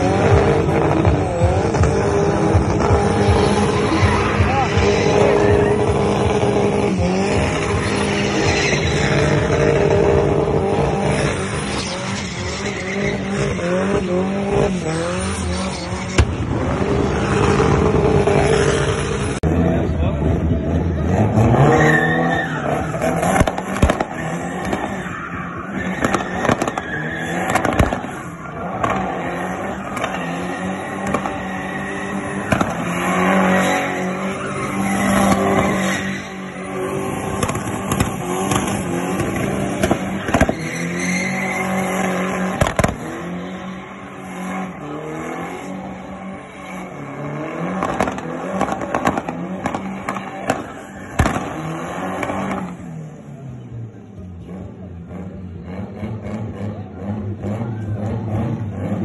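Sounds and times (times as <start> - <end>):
car engine revving hard: 0.0 - 52.9
tyres squealing: 24.0 - 42.6
sharp bangs: 29.9 - 43.4, 47.6 - 52.6.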